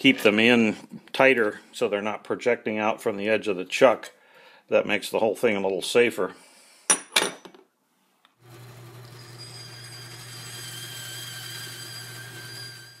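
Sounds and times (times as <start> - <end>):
lathe motor hum and whine: 8.5 - 13.0.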